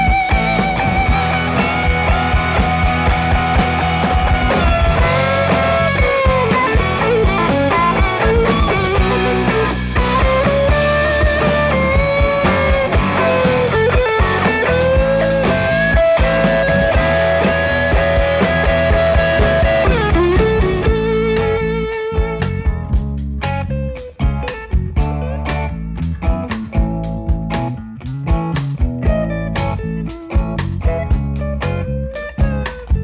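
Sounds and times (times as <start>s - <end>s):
bass and drums: 0.0s - 33.0s
electric guitar solo: 0.0s - 33.0s.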